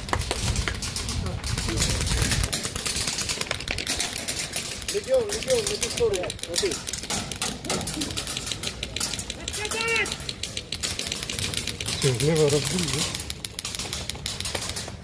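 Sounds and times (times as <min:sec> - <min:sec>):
airsoft rifles firing: 0:00.0 - 0:15.0
people shouting: 0:09.4 - 0:10.3.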